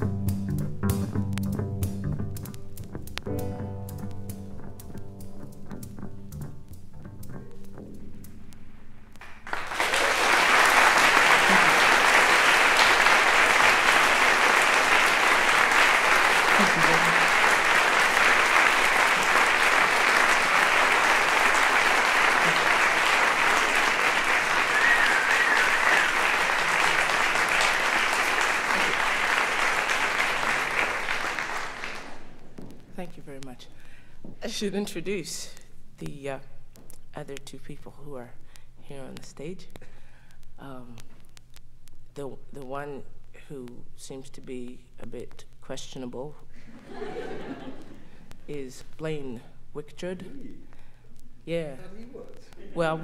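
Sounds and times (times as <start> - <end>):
live band music: 0.0 - 8.4
audience applause: 9.2 - 32.4.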